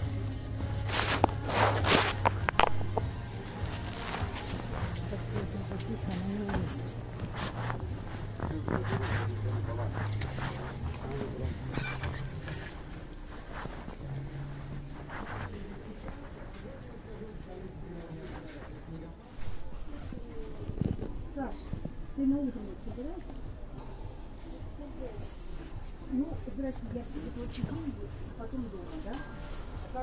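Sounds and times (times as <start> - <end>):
background music: 0.0 - 18.0
hangers rustling and clicking: 0.8 - 15.5.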